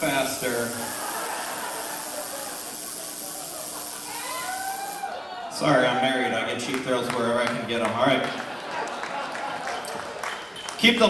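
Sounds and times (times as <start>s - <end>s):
electrical hiss: 0.0s - 5.2s.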